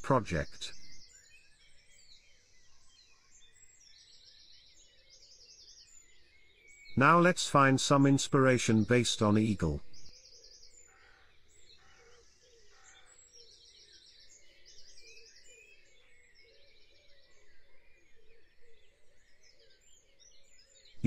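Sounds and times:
birds singing: 0:00.0 - 0:21.0.

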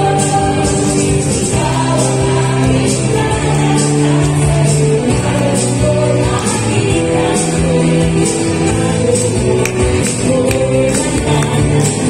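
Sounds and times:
women's vocal group singing: 0:00.0 - 0:12.0.

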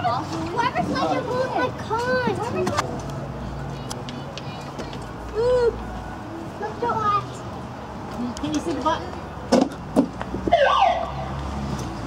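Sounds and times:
wavering siren wail: 0:10.5 - 0:11.2.

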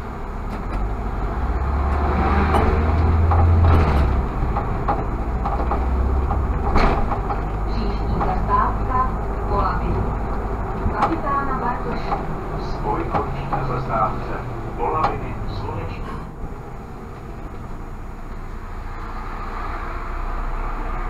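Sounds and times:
bus engine drone: 0:00.0 - 0:21.0.

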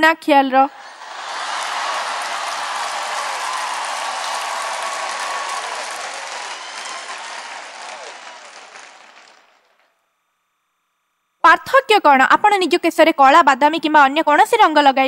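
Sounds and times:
large audience applauding: 0:00.7 - 0:10.0.

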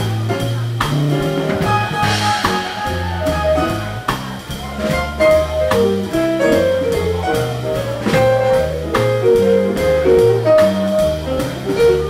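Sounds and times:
drums and cymbals: 0:00.0 - 0:12.0
jazz band playing: 0:00.0 - 0:12.0
walking bass line: 0:00.0 - 0:12.0.

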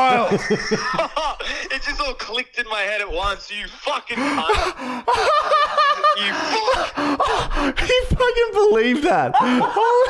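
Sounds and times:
men laughing hard: 0:00.0 - 0:01.8, 0:04.1 - 0:07.5, 0:09.2 - 0:10.0
gasping breaths: 0:04.2 - 0:05.4, 0:06.3 - 0:07.9.

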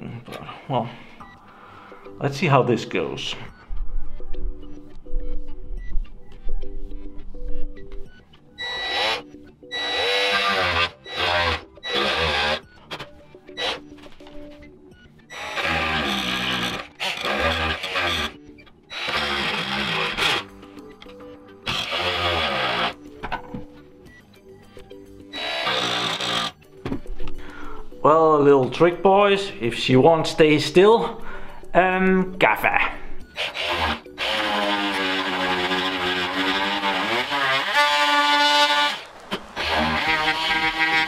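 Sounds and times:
steady buzz of tool: 0:08.6 - 0:12.6, 0:15.3 - 0:20.5, 0:21.7 - 0:23.0, 0:25.3 - 0:26.6, 0:33.4 - 0:41.0
oscillating multi-tool cutting plastic: 0:08.6 - 0:13.8, 0:15.3 - 0:20.5, 0:21.6 - 0:23.0, 0:25.3 - 0:26.6, 0:33.4 - 0:41.0.

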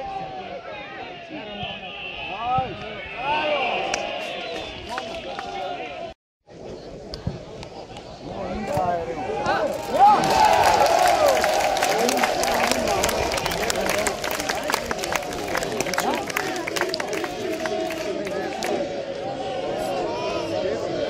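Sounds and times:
crowd cheering and shouting: 0:00.0 - 0:06.1, 0:08.4 - 0:21.0
scattered clapping: 0:09.7 - 0:18.8.

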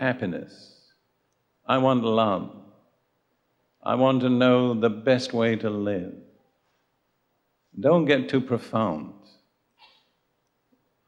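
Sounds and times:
man lecturing: 0:00.0 - 0:00.8, 0:01.7 - 0:02.5, 0:03.8 - 0:06.2, 0:07.8 - 0:09.2.

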